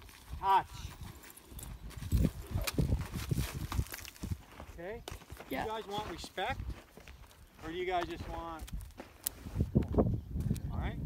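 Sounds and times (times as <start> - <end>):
horse hooves on soft dirt: 0.0 - 10.6.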